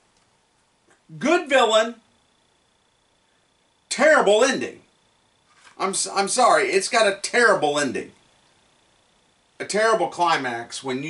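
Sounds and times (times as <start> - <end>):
faint high-pitched whine: 0.0 - 11.0.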